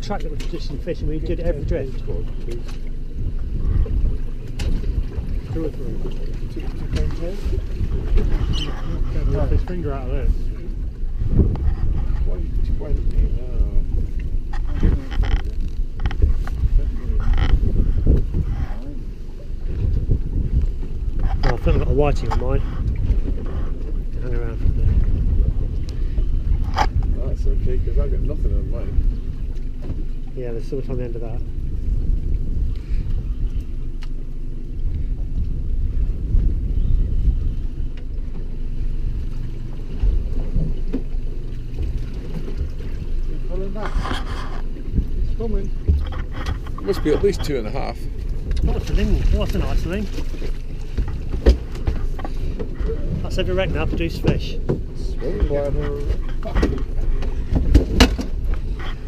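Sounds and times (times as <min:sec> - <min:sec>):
water around a boat: 0:00.0 - 0:59.0
wind buffeting microphone: 0:00.0 - 0:59.0.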